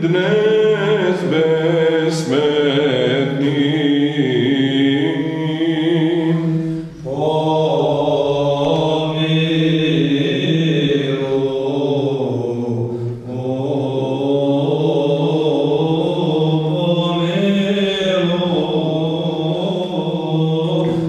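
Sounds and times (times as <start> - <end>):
low sung drone: 0.0 - 21.0
male choir chanting melody: 0.0 - 21.0.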